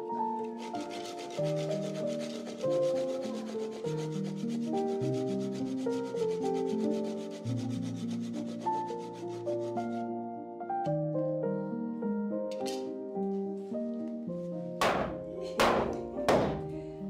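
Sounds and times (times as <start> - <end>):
fast rasping rhythm: 0.4 - 10.0.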